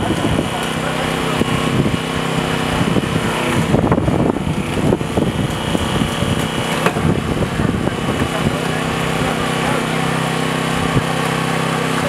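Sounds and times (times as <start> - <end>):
small petrol engine running: 0.0 - 12.0.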